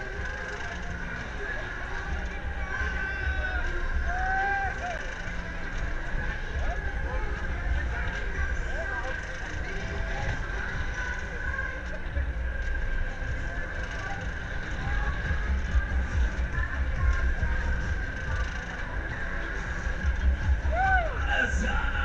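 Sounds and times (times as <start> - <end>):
fairground music: 0.0 - 22.0
voices: 0.0 - 22.0.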